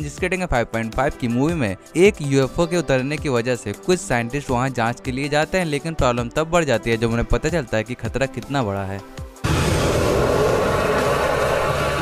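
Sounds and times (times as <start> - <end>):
loud rushing noise: 9.4 - 12.0
low rumble: 9.4 - 12.0.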